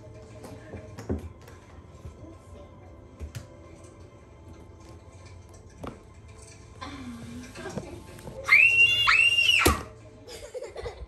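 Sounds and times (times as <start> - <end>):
high-pitched screams: 8.4 - 9.9.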